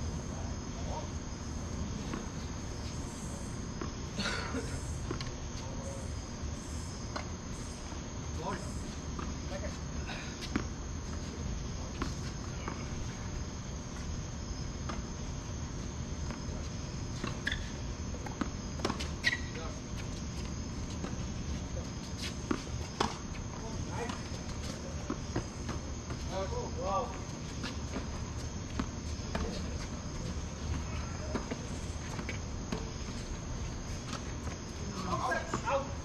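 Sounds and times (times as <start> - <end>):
insects chirring: 0.0 - 36.0.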